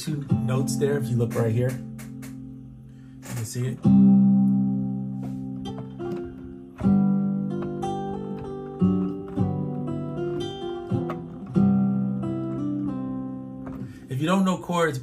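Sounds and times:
acoustic guitar chords and melody: 0.0s - 15.0s.

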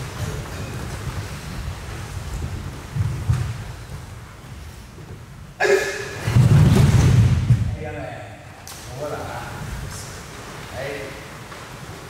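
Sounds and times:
rumble of footfalls on wood: 0.0s - 5.3s, 6.2s - 7.8s
dull thuds: 6.2s - 7.8s.

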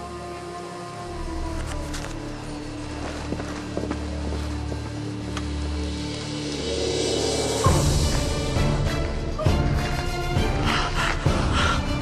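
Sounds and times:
dramatic droning music: 0.0s - 12.0s
faint footsteps: 1.5s - 6.4s.

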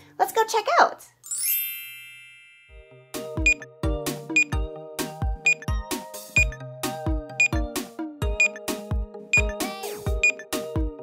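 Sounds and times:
bright chime: 1.3s - 3.0s
cheerful music with bouncy beat: 2.6s - 11.0s.

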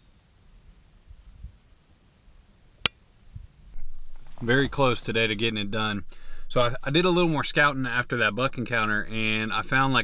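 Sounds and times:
faint low rumble: 3.4s - 10.0s.

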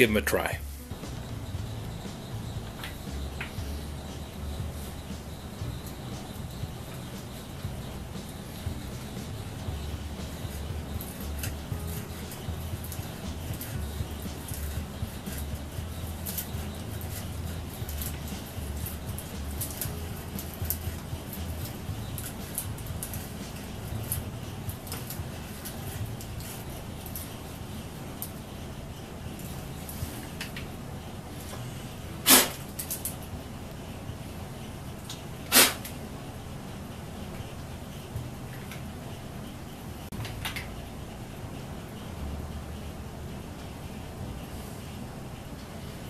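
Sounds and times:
low hum: 0.0s - 46.0s.

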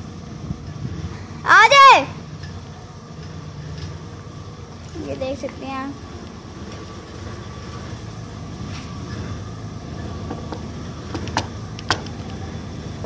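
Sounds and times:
car engine idling: 0.0s - 13.0s.

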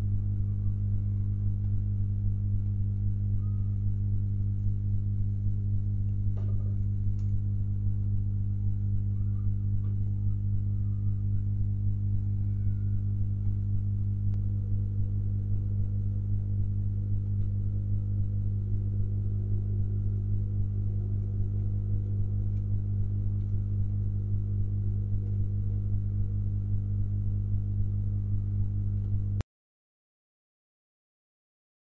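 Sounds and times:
low electrical hum: 0.0s - 29.4s.

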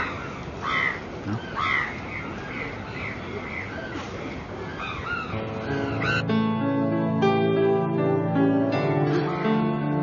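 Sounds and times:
bird calling: 0.0s - 6.3s.

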